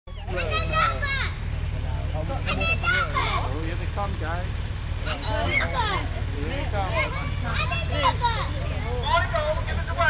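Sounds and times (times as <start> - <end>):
children calling and chattering: 0.1 - 10.0
low background rumble: 0.1 - 10.0.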